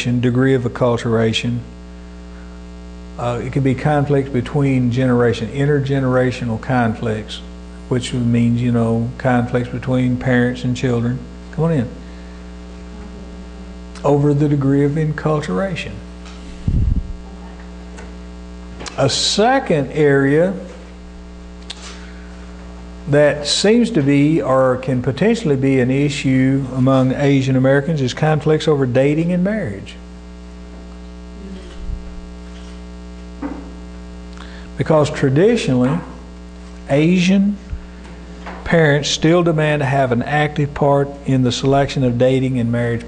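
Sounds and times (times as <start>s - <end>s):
electrical mains hum: 0.0s - 43.0s.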